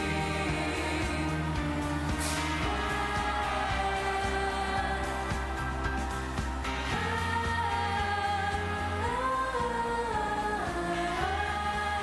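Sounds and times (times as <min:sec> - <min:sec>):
pop song with singing: 0:00.0 - 0:12.0.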